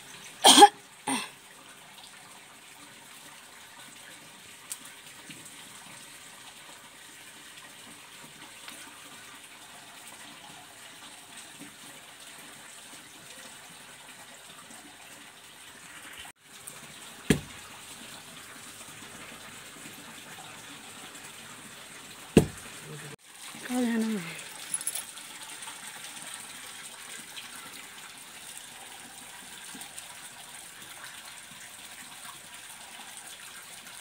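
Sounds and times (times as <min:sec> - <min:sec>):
person coughing: 0:00.4 - 0:01.3.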